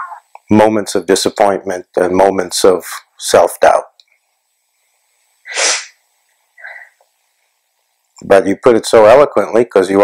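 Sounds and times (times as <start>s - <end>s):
person sneezing: 5.5s - 6.0s.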